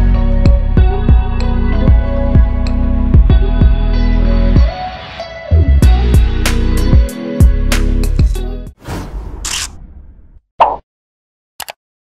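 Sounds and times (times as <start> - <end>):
swish sound effect: 8.8 - 10.8.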